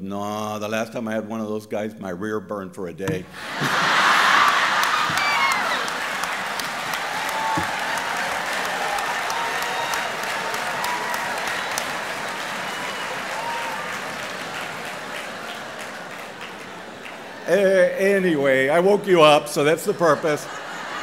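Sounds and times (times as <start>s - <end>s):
audience laughing: 3.3s - 9.4s, 10.0s - 21.0s
audience applauding: 3.4s - 18.6s.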